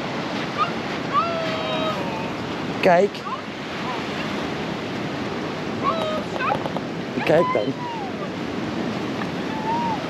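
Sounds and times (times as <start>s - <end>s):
waves breaking on beach: 0.0s - 10.0s
wind on microphone: 0.0s - 10.0s.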